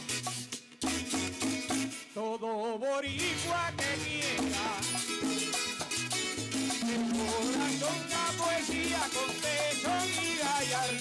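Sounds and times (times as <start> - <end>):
live band playing folk music: 0.0 - 2.2, 3.1 - 11.0.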